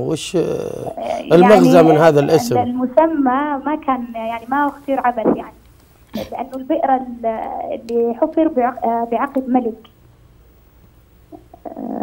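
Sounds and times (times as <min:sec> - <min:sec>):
faint low hum: 0:00.0 - 0:12.0
woman speaking over a phone: 0:01.1 - 0:05.6.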